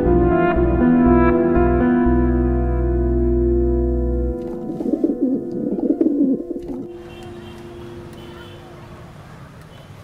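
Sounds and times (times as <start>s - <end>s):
pigeon cooing: 4.6s - 6.9s.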